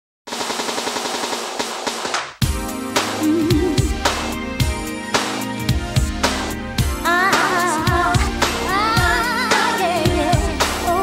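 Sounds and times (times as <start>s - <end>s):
rapid rattling sharp hits: 0.3s - 2.5s.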